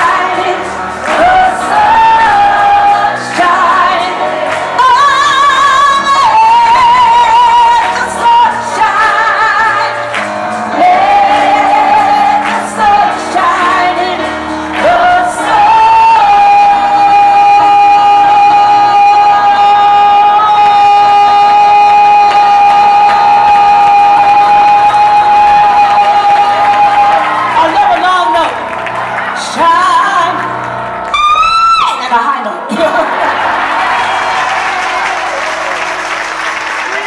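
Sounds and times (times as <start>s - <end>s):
woman singing: 0.0s - 28.5s, 29.4s - 30.6s.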